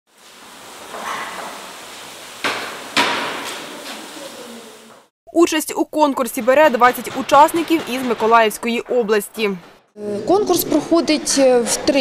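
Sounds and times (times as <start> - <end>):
food frying in a pan: 0.1 - 5.1
utensils knocking cookware: 2.4 - 4.0, 6.0 - 9.6.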